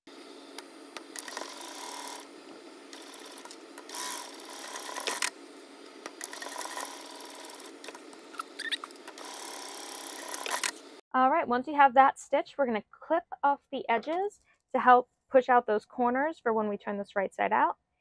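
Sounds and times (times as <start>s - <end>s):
sewing machine stitching: 1.1s - 2.3s, 2.9s - 5.4s, 6.0s - 10.8s.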